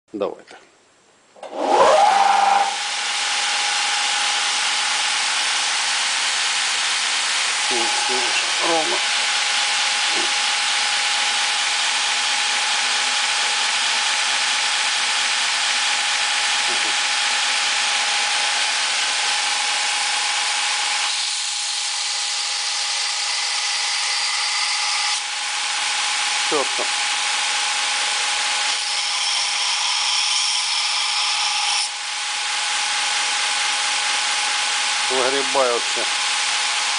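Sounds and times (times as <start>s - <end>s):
belt grinder running: 1.4s - 36.9s.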